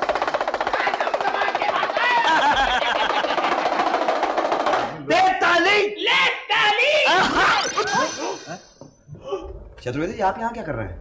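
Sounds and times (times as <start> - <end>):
hand drum rattling: 0.0 - 2.2.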